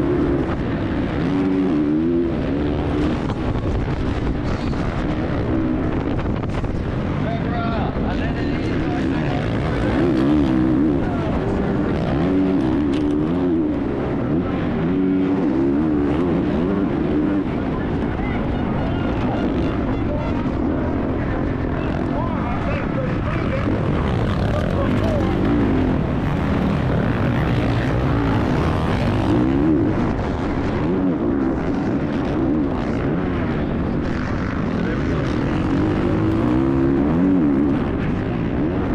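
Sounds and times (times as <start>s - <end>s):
motocross bike engine revving: 0.0s - 6.0s, 8.1s - 38.9s.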